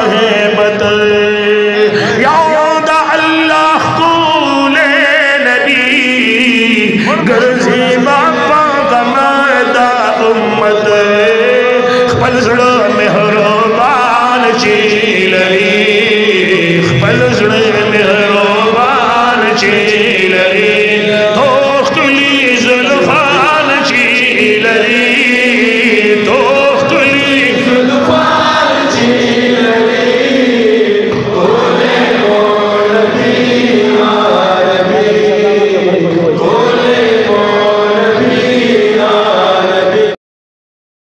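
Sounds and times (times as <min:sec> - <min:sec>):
men's voices holding low drone: 0:00.0 - 0:40.1
man singing unaccompanied: 0:00.0 - 0:40.2.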